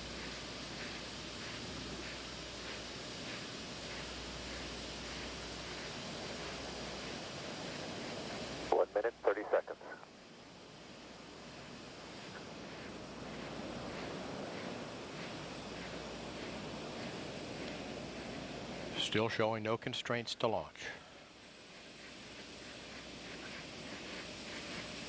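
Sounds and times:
steady background hiss: 0.0 - 25.0.

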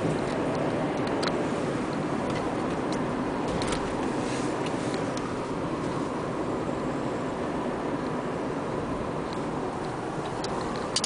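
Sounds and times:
car road and engine noise: 0.0 - 11.0.

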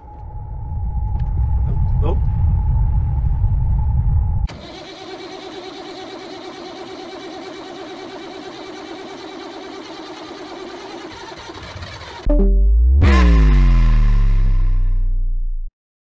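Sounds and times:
loud low rumble: 0.0 - 4.5, 12.3 - 15.7
computer fans and drives whirring: 0.0 - 12.3.

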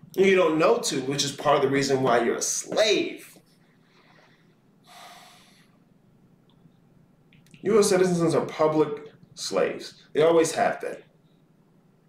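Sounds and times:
breath through the nose: 3.9 - 5.8.

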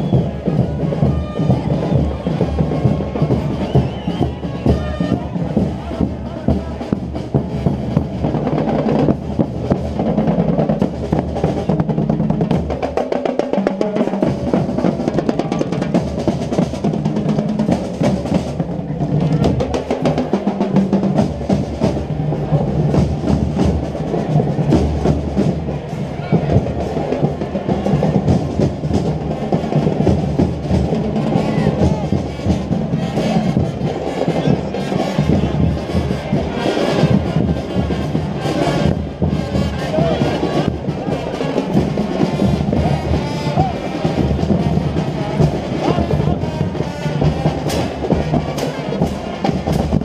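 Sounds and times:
bass drums steady beat: 0.0 - 12.9, 13.6 - 50.0
snare drum rolls: 0.0 - 50.0.

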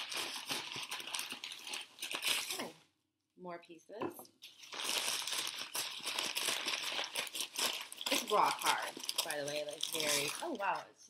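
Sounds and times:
paper bag crinkling: 0.0 - 2.7, 4.4 - 10.8.

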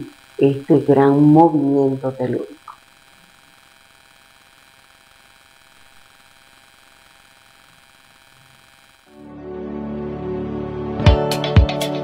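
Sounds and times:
faint electrical hum and hiss: 0.0 - 9.2.

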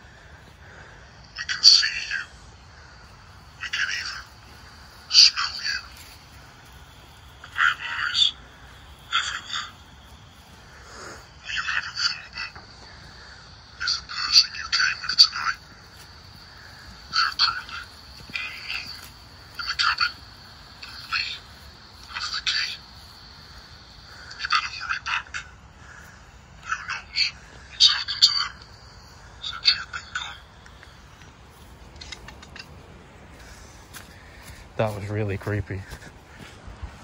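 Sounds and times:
footsteps crunching through leaves: 3.4 - 10.7, 15.6 - 22.2, 30.8 - 37.0.

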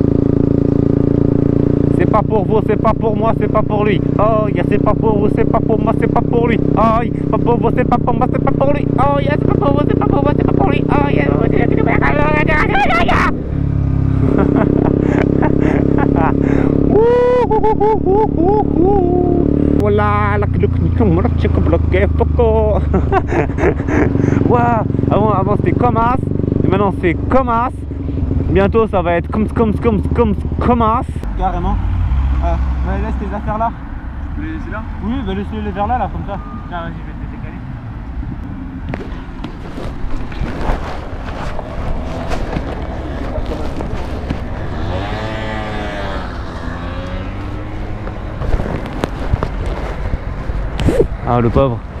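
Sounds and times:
motorcycle engine running: 0.0 - 31.7, 38.6 - 52.0
person talking: 2.0 - 13.4
wind rumble on microphone: 38.2 - 52.0.

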